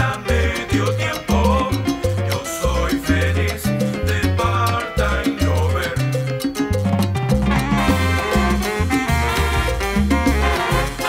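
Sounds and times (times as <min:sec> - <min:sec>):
salsa band playing instrumental: 0:00.0 - 0:11.0.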